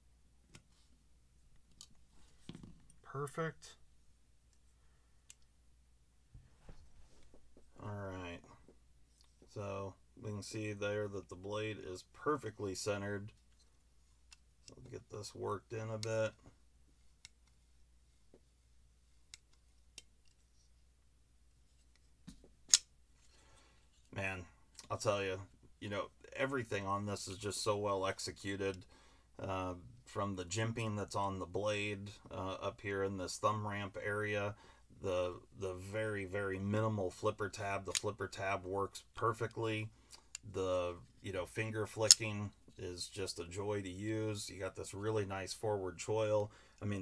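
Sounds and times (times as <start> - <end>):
faint clicks of tools handled: 19.3 - 20.6.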